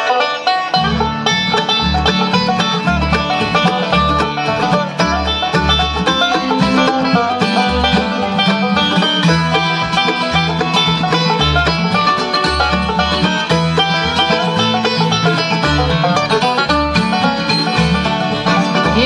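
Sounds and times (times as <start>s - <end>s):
banjo rolls: 0.0s - 19.0s
bluegrass band playing: 0.0s - 19.0s
upright bass notes: 0.6s - 19.0s.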